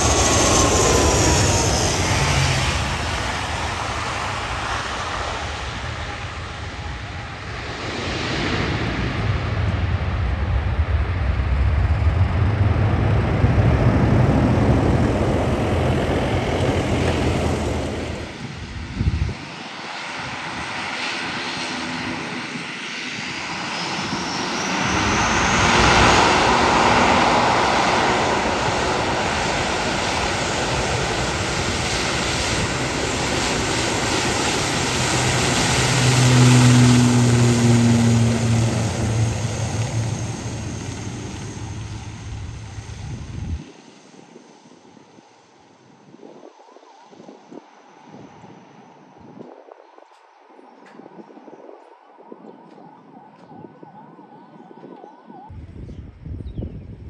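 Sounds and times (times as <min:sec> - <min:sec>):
turboprop airliner engine drone: 0:00.0 - 0:57.0.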